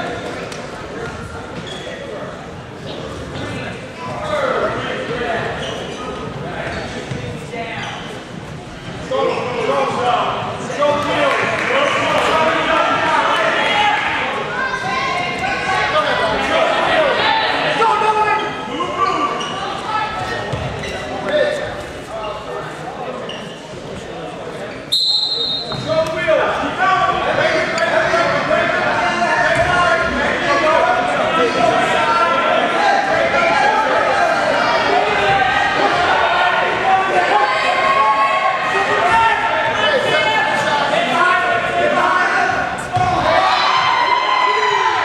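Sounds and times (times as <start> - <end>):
voices shouting in gym: 25.2 - 45.0.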